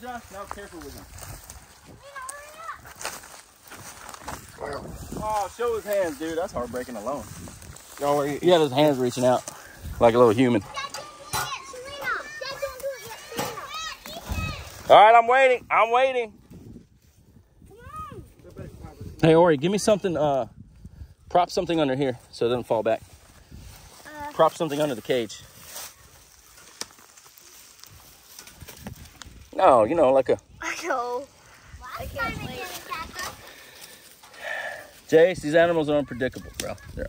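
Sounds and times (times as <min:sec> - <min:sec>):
dry leaves and twigs crackling: 0:00.0 - 0:15.2, 0:23.0 - 0:37.0
children talking and calling out: 0:01.1 - 0:15.3, 0:17.6 - 0:18.5, 0:23.3 - 0:28.4, 0:30.4 - 0:37.0.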